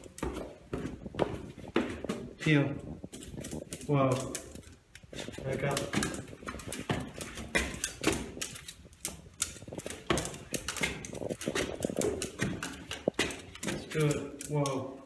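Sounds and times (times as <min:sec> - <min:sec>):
dog claws clicking on stairs: 0:00.0 - 0:15.0
footsteps on stairs: 0:00.0 - 0:15.0.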